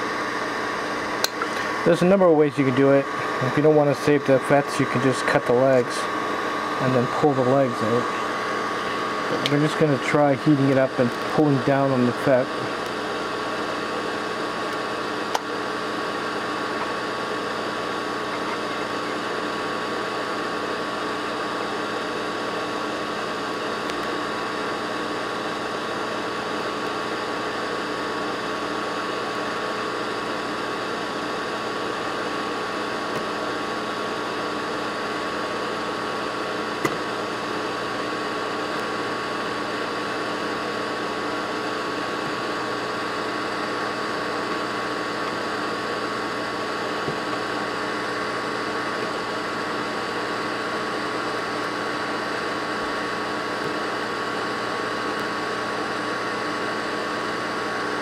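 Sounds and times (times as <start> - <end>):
hot-air gun hissing and whining: 0.0 - 58.0.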